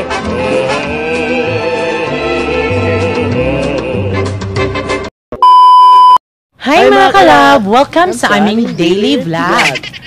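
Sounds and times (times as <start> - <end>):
loud electronic beep: 5.4 - 6.2
woman speaking: 6.6 - 9.8.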